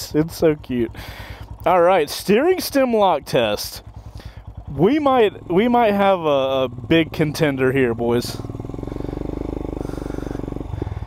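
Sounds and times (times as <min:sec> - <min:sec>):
motorcycle engine running slowly: 0:00.0 - 0:11.0.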